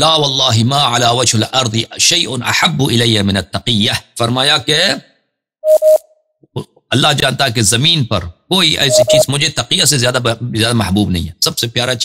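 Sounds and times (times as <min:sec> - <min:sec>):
man speaking: 0:06.5 - 0:12.0.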